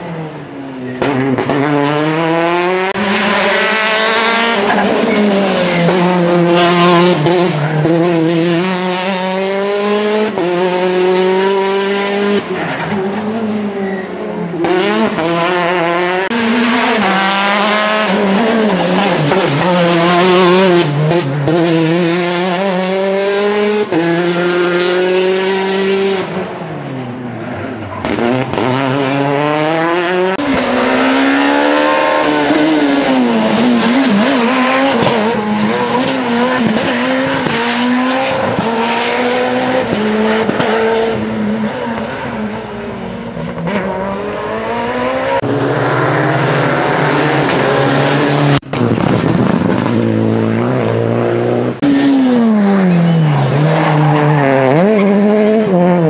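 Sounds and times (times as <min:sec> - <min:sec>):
rally car engines revving hard: 0:00.0 - 0:56.0.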